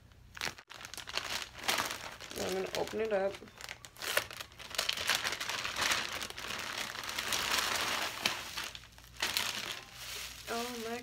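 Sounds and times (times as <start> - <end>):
plastic bag crinkling: 0.3 - 11.0.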